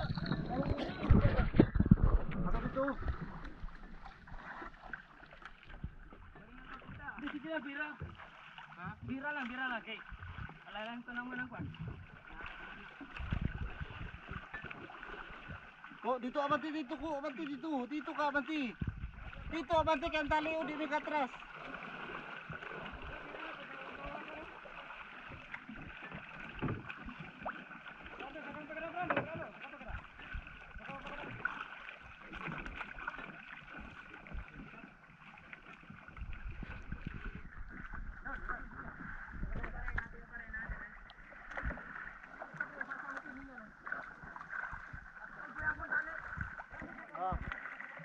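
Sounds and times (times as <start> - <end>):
water lapping against canoe hull: 0.0 - 48.0
wind: 0.0 - 48.0.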